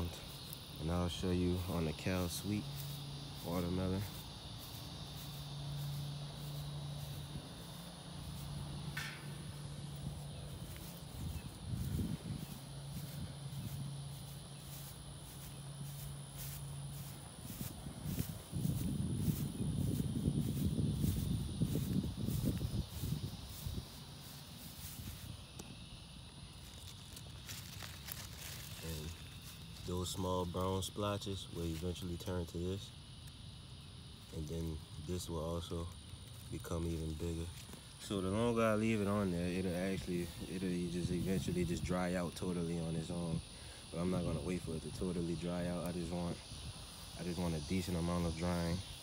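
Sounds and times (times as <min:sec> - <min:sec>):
footsteps on grass: 0:00.0 - 0:33.0, 0:34.0 - 0:49.0
insects chirping: 0:00.0 - 0:49.0.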